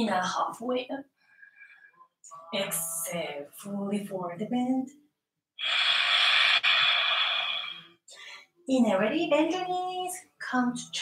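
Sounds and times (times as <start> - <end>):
woman exhaling forcefully: 5.6 - 8.0.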